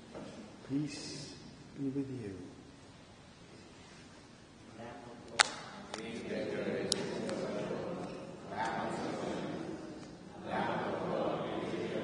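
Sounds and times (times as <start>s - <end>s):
murmured voices in echoing church: 4.8s - 12.0s
sharp loud click: 5.3s - 5.8s.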